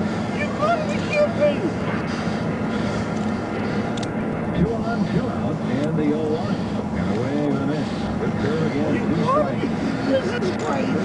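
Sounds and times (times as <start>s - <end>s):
indistinct distant voices: 0.0s - 11.0s
steady low hum: 0.0s - 11.0s.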